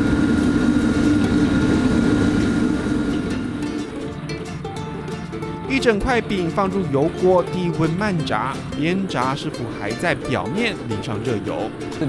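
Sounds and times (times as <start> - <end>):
faint high whine: 0.0 - 12.0
gas wok range roaring: 0.0 - 12.0
soft plucked guitar music: 0.0 - 12.0.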